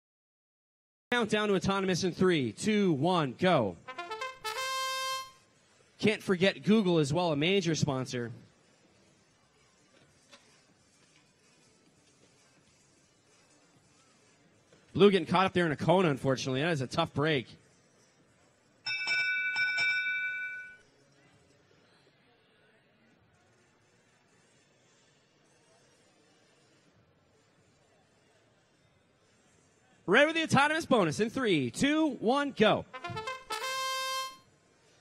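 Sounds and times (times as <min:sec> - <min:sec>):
trumpet-like fanfare: 0:03.8 - 0:05.4, 0:32.8 - 0:34.4
electronic bell-like chime: 0:18.9 - 0:20.8.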